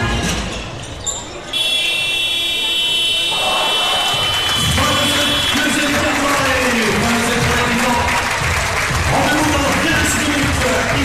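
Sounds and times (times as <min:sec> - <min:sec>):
high-pitched arena buzzer: 0:01.5 - 0:06.4
arena music: 0:03.3 - 0:11.0.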